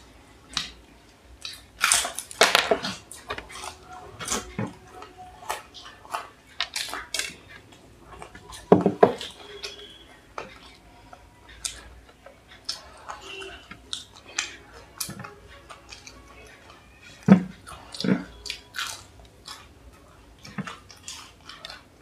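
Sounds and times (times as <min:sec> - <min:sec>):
crunching and chewing food: 0:00.0 - 0:22.0.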